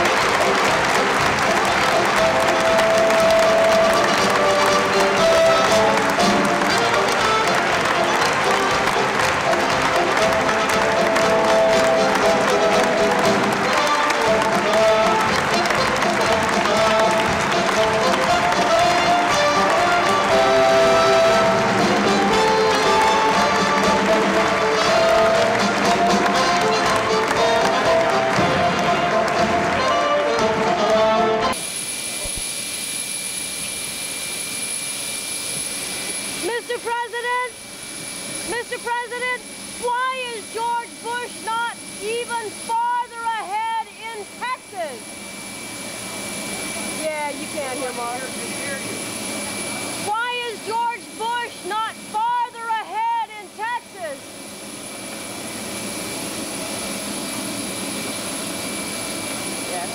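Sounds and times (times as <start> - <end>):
band music: 0.0 - 31.6
jet engines whining: 0.0 - 59.9.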